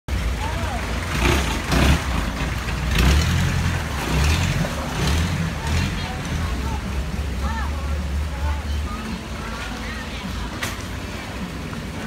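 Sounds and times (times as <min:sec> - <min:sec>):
boat engine rumbling: 0:00.1 - 0:12.0
faint voices: 0:04.4 - 0:12.0.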